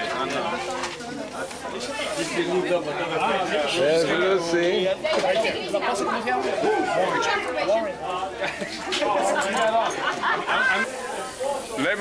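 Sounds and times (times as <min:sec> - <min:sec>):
overlapping conversational chatter: 0:00.0 - 0:12.0.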